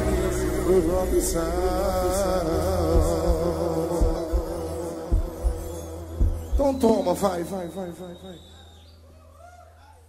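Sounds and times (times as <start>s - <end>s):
heavy low drum thumps: 0.0s - 6.8s
deep bass drone: 0.0s - 7.3s.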